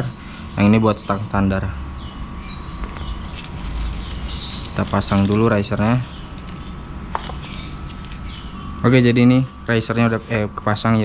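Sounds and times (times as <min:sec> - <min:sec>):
faint handling noise: 0:02.7 - 0:08.9.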